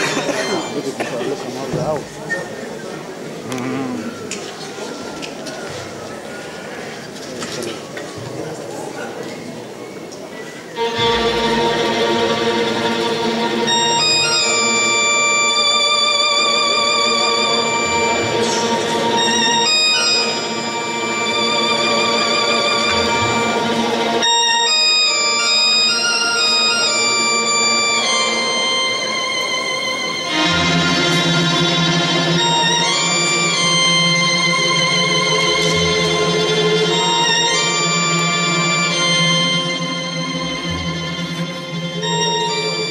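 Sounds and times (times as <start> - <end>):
string melody with vibrato: 10.7 - 42.9
accordion: 10.8 - 42.9.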